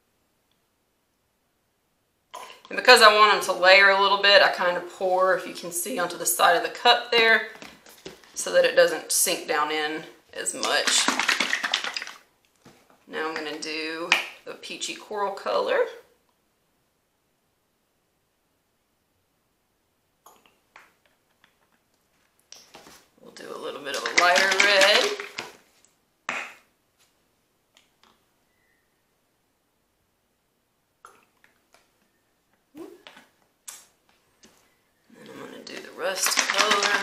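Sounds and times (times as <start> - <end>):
plastic bottle of paint rattling: 10.4 - 12.3, 22.6 - 25.6, 35.6 - 37.0
person's voice: 23.2 - 25.4, 35.1 - 37.0.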